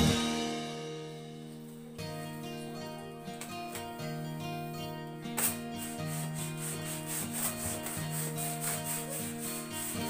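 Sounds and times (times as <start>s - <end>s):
background music: 0.0s - 10.0s
hand balloon pump strokes: 5.3s - 10.0s.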